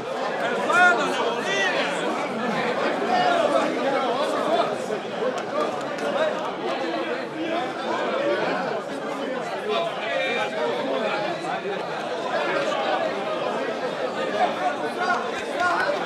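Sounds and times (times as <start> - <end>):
crowd chatter: 0.0 - 16.0.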